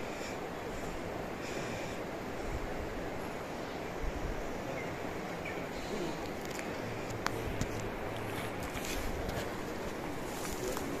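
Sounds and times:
outdoor background noise: 0.0s - 11.0s
rustling in undergrowth: 5.6s - 11.0s.

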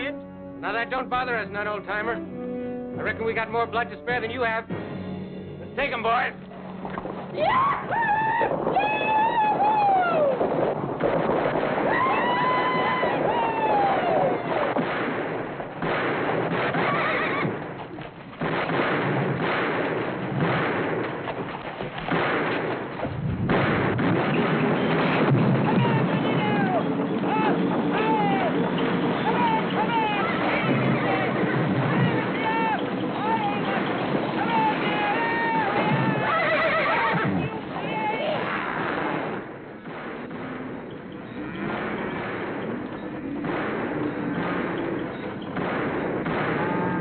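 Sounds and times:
horses galloping on dirt: 6.5s - 14.9s, 16.5s - 18.4s, 24.2s - 38.8s
people shouting: 7.4s - 10.4s, 11.8s - 14.8s, 25.6s - 38.9s, 46.3s - 47.0s
horse whinnying: 16.7s - 17.6s, 34.4s - 38.9s.

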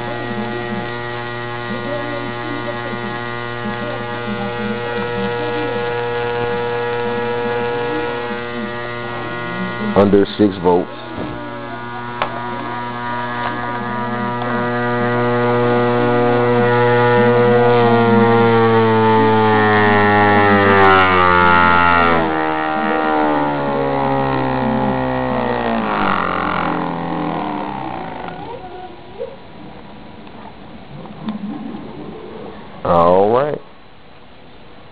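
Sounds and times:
coil buzzing hum: 0.0s - 34.9s.

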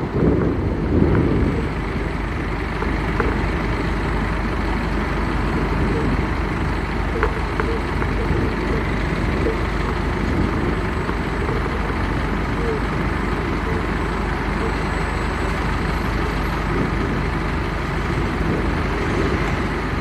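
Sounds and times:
bus engine: 0.0s - 20.0s
city traffic rumble: 0.0s - 20.0s.

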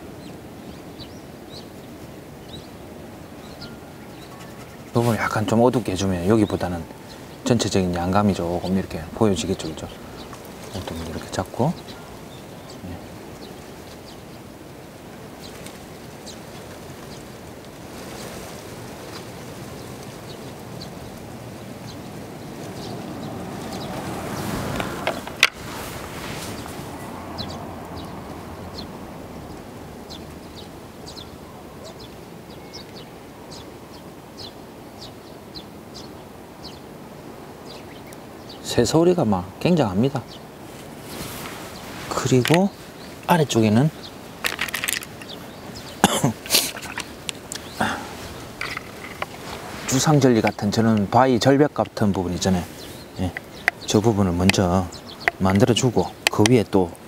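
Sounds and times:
birds chirping: 0.0s - 57.0s
rushing noise: 21.6s - 31.1s.

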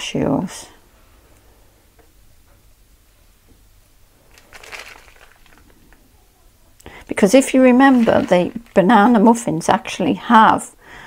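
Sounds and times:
plastic packet crinkling: 4.2s - 6.0s, 6.8s - 9.5s.

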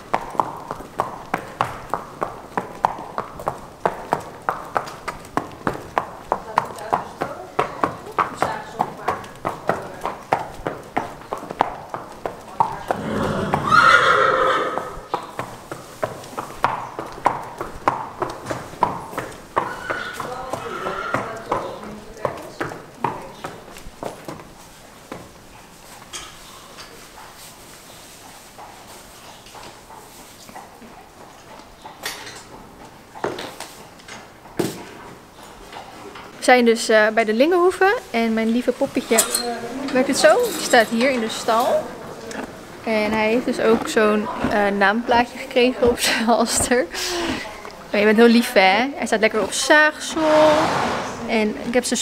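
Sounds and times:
horse hooves on brick paving: 0.0s - 52.0s
horse whinnying: 12.9s - 15.1s, 19.6s - 21.4s, 50.0s - 51.5s.

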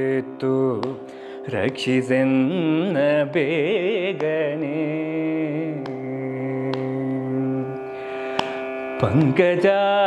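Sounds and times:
man singing devotional music: 0.0s - 10.0s.

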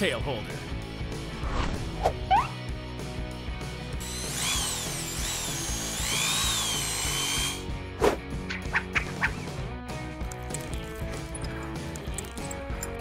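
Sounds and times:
background music: 0.0s - 13.0s
electric drill whining: 4.0s - 7.7s.

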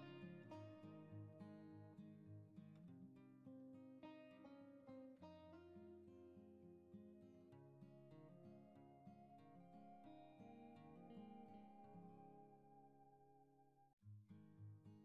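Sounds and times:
plucked acoustic guitar: 0.0s - 12.6s.

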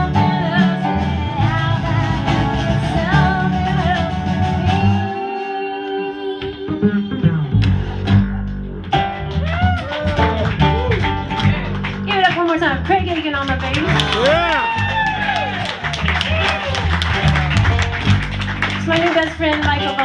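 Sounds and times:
piano accompaniment: 0.0s - 20.0s.

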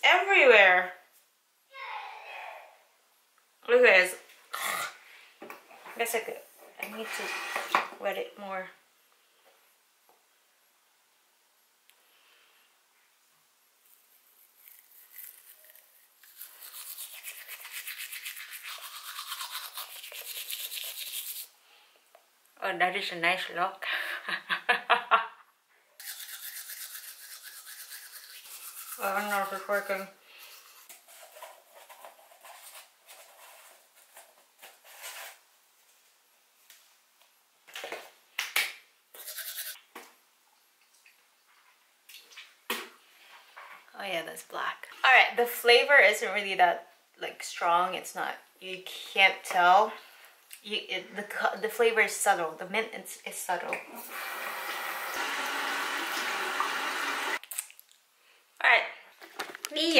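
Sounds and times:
toothbrush scrubbing teeth: 13.9s - 21.6s, 26.0s - 32.9s, 39.2s - 39.8s.

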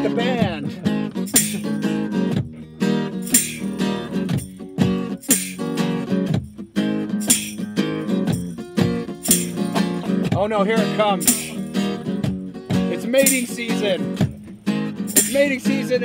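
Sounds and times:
acoustic guitar strumming: 0.0s - 16.0s.

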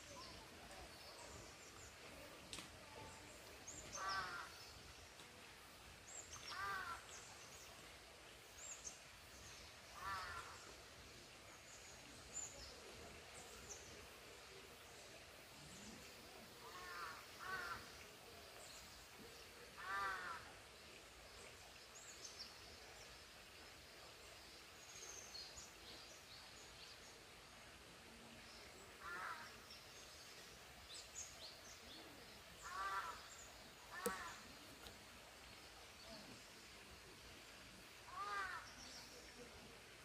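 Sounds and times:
small birds chirping: 29.0s - 36.4s
large bird calling: 32.6s - 33.2s, 33.9s - 34.4s.

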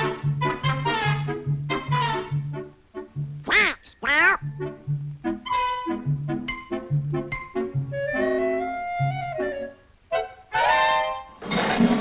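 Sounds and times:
orchestral cartoon music: 0.0s - 12.0s
cartoon duck voice squawks: 3.4s - 4.6s.

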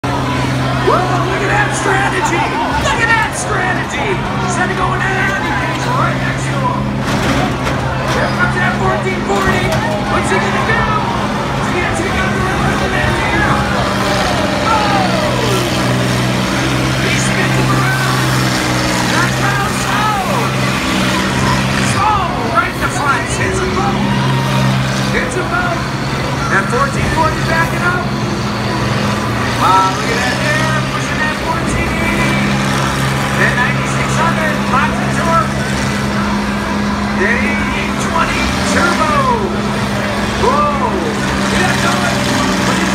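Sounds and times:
combine harvester engines droning: 0.0s - 42.9s
crowd voices: 0.0s - 42.9s.

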